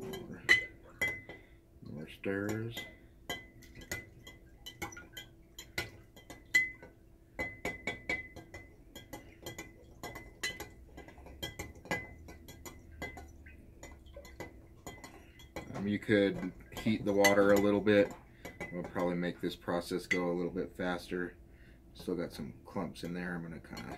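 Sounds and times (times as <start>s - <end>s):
stirrer clinking in glass jar: 2.4s - 20.4s, 23.0s - 23.9s.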